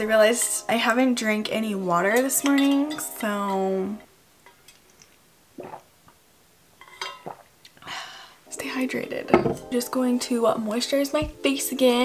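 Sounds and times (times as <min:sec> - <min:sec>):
person swallowing: 0:05.6 - 0:06.0, 0:07.2 - 0:07.8.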